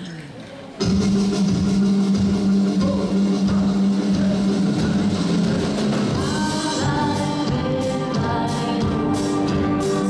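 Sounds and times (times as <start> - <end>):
live band playing: 0.0 - 10.0.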